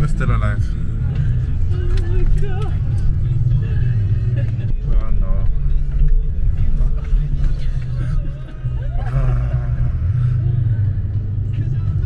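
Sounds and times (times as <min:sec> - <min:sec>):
vehicle engine rumble from inside cabin: 0:00.0 - 0:12.0.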